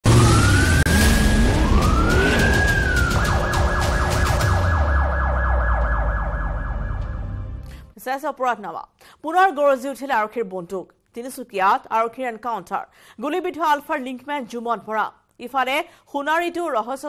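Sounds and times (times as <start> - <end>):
police siren wailing: 0.0 - 7.6
low drone: 0.0 - 7.8.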